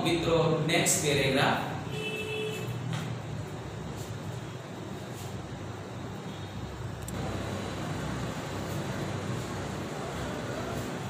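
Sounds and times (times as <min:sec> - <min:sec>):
low background noise: 0:00.0 - 0:11.0.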